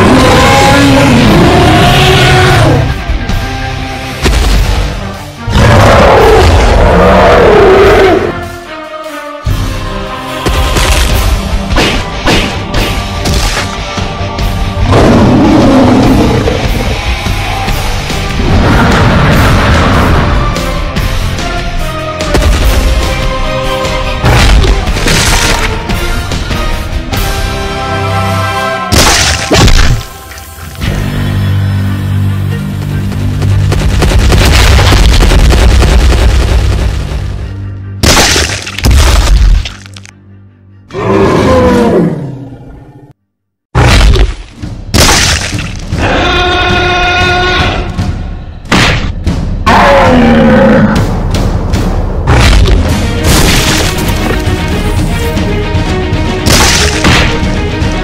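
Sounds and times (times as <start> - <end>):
music: 0.0 - 43.2, 43.8 - 58.0.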